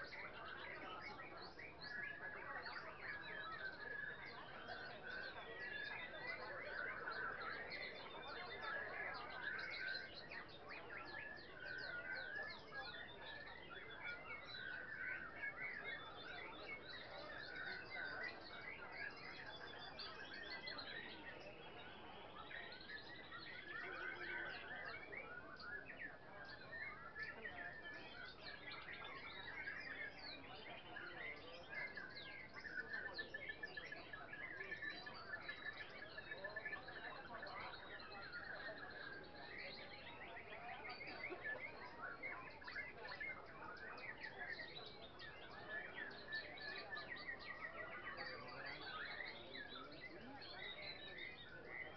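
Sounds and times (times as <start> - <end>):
caged songbirds singing: 0.0 - 51.9.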